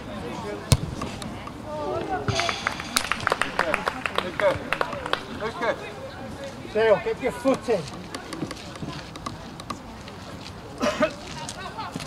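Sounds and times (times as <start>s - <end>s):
football kicked: 0.7s - 1.4s.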